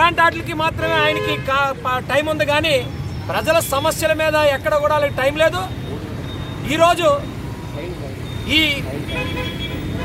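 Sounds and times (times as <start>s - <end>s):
road traffic: 0.0s - 10.0s
vehicle horn: 9.1s - 10.0s.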